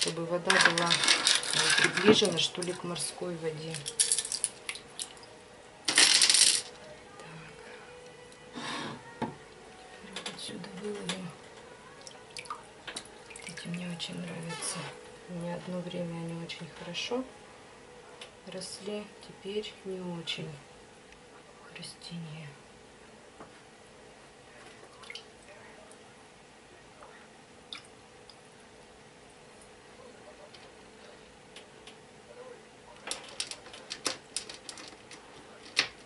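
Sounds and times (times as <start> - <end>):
faint steady hum: 0.0 - 36.0
water dripping and splashing: 12.0 - 14.0, 24.9 - 25.3, 27.7 - 28.4.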